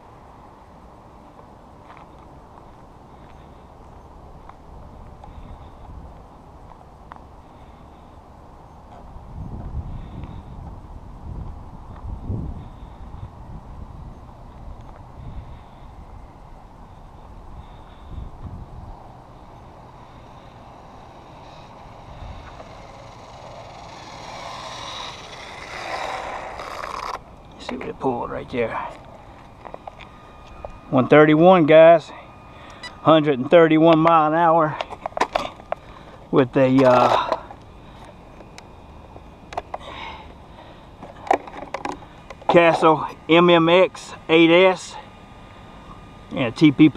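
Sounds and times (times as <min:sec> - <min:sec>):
wind rumbling on microphone: 0:08.8 - 0:19.8.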